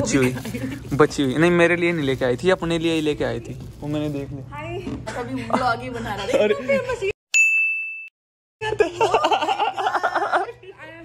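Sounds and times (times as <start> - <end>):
bright ding: 7.3 - 8.1.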